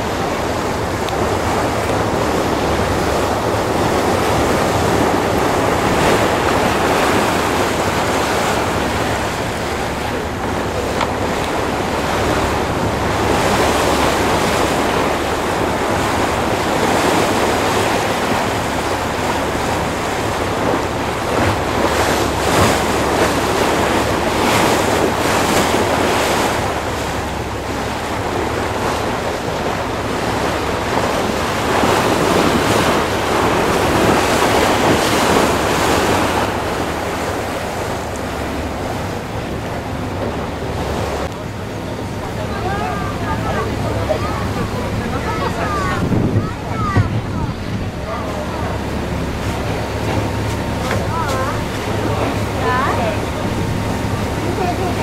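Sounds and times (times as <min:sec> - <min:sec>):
choppy sea waves: 0:00.0 - 0:55.0
wind on microphone: 0:00.0 - 0:55.0.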